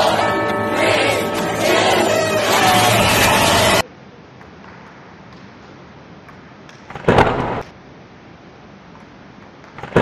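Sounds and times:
faint steady background noise: 3.8s - 10.0s.

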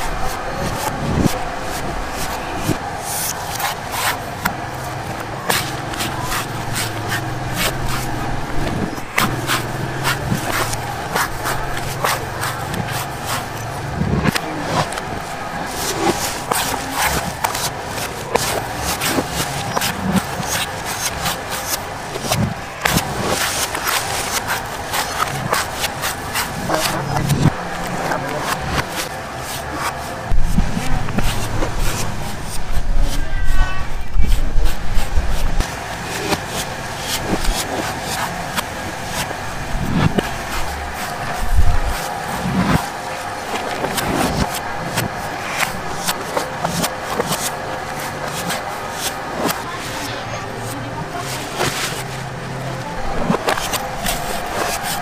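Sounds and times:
background chatter: 0.0s - 55.0s
knife chopping coconut husks: 0.3s - 32.6s, 53.1s - 55.0s.

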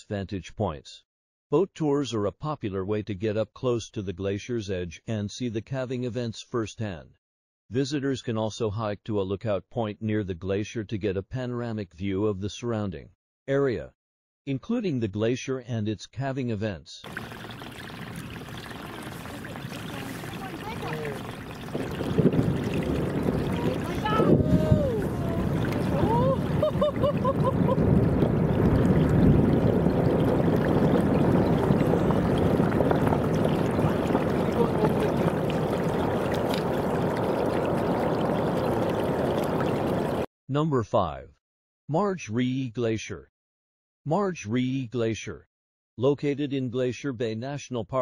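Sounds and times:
ice crashing into water: 17.1s - 40.3s.

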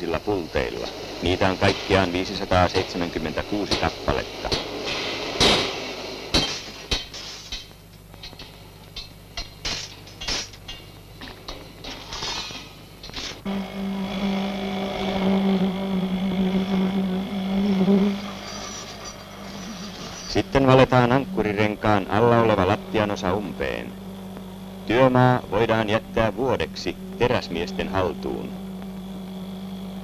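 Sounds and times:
low machine hum: 0.0s - 30.0s.

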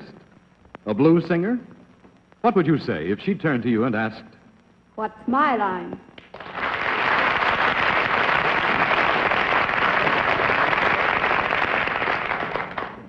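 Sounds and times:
audience applauding: 6.2s - 13.0s.

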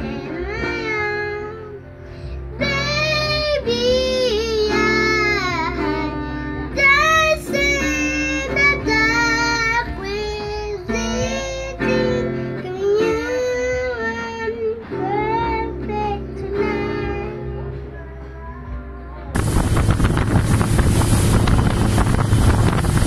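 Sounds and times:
girl singing: 0.0s - 19.3s
acoustic guitar strumming: 0.0s - 23.0s.

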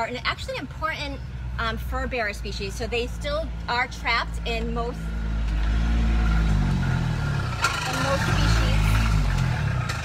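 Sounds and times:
motor engine running: 2.9s - 10.0s.

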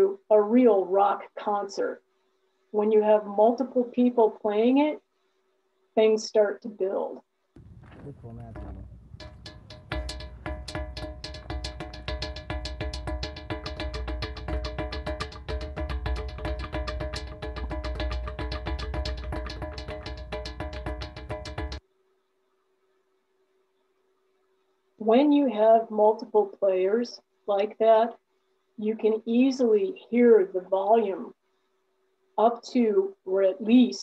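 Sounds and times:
rock gong struck rapidly: 8.6s - 21.8s.

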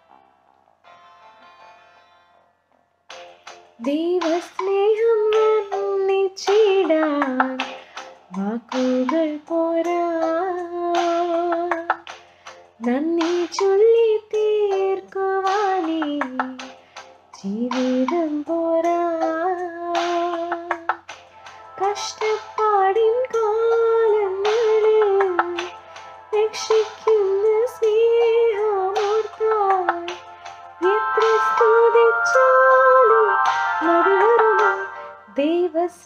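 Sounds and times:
woman singing solo: 30.8s - 36.0s.

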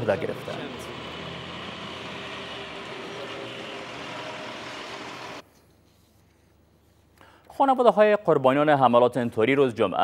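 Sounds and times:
military vehicles driving past: 0.0s - 5.4s.

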